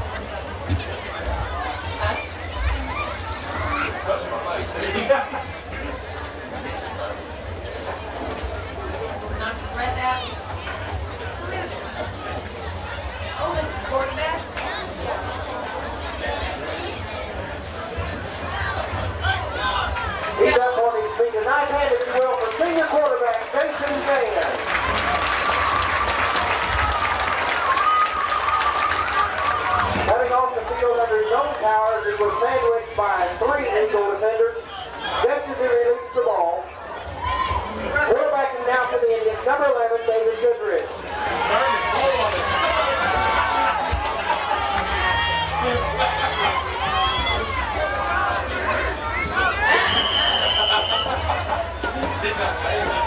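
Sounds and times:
crowd hubbub: 0:00.0 - 0:53.0
public address voice over loudspeakers: 0:20.4 - 0:24.6, 0:30.0 - 0:36.6, 0:37.9 - 0:42.3.

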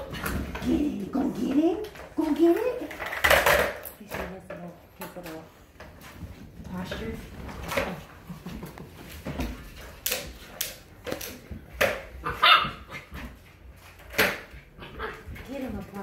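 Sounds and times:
puppy barking: 0:12.2 - 0:13.1.

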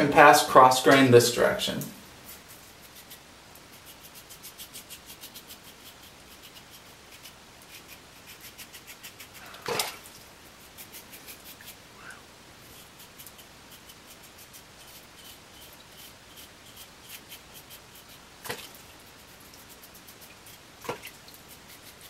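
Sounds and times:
razor scraping stubble: 0:02.2 - 0:11.9, 0:12.6 - 0:22.0.

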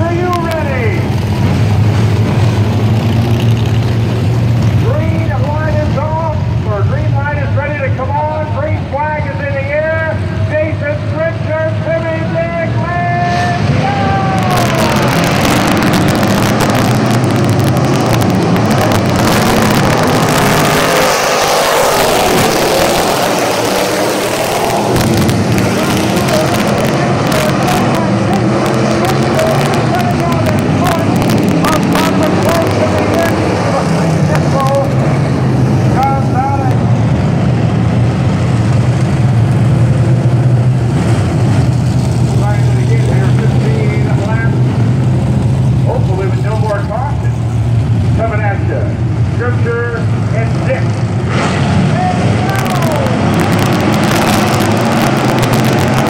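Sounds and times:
race car engines droning: 0:00.0 - 0:56.0
crowd voices: 0:06.8 - 0:20.3, 0:21.6 - 0:36.9, 0:51.9 - 0:54.8.

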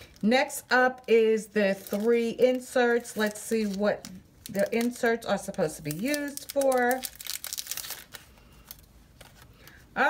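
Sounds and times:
packaging crinkling: 0:00.0 - 0:09.9
packaging rustling: 0:00.0 - 0:09.9.

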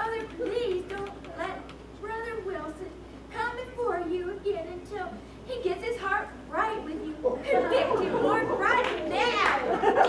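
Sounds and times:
woman speaking: 0:00.0 - 0:09.8.

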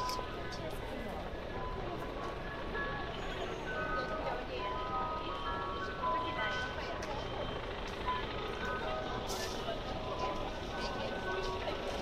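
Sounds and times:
people: 0:00.0 - 0:12.0
traffic: 0:00.0 - 0:12.0.

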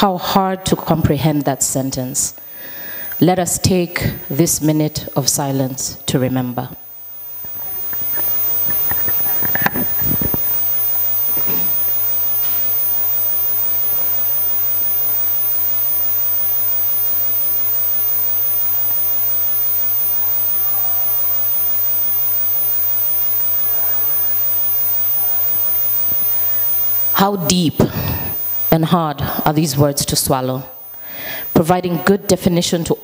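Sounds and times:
electrical hum and hiss: 0:00.0 - 0:33.0.

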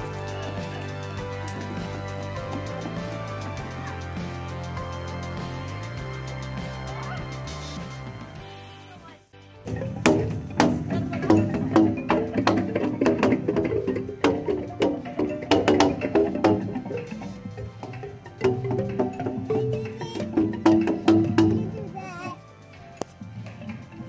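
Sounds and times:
pipes slapped with paddles: 0:09.7 - 0:22.0.

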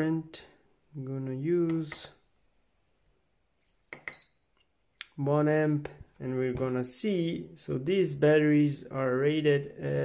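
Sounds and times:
short high-pitched beep: 0:04.1 - 0:04.5.

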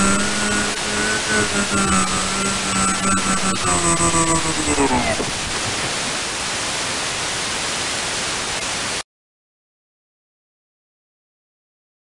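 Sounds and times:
radio static hiss: 0:00.0 - 0:09.0.

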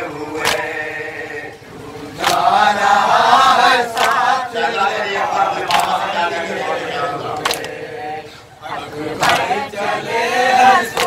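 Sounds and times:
men chanting a lament: 0:00.0 - 0:11.0
person reciting: 0:00.0 - 0:11.0
hand slaps on chest: 0:00.4 - 0:00.6.

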